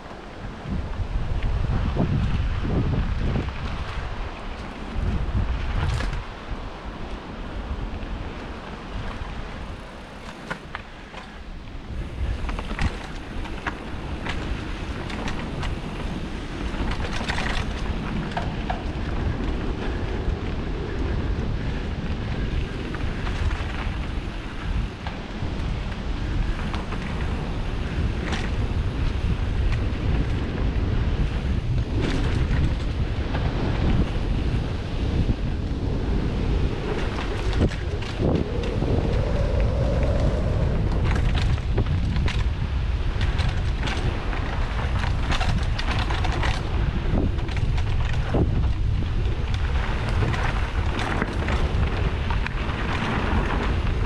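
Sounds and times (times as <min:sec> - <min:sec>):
bike clicks and rattles: 0:00.0 - 0:54.0
tyres rumbling on dirt trail: 0:00.0 - 0:54.0
wind buffeting microphone: 0:00.0 - 0:54.0.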